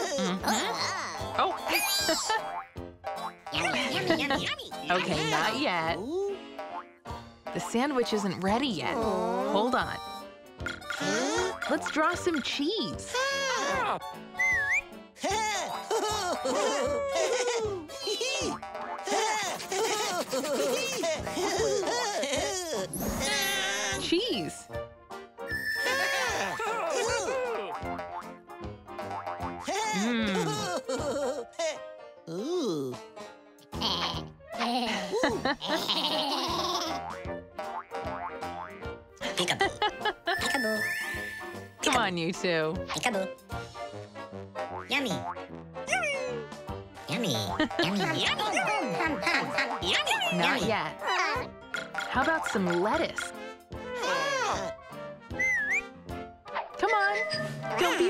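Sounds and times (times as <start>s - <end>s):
cartoon voices squeaky babble: 0.0s - 2.3s, 10.7s - 12.4s, 13.0s - 15.5s, 18.0s - 18.6s, 22.7s - 24.1s, 25.7s - 27.7s, 40.3s - 41.2s, 45.9s - 46.5s, 49.7s - 51.5s, 54.0s - 54.7s, 56.7s - 57.8s
light children's music: 0.0s - 58.0s
springy boing effects: 51.7s - 53.3s.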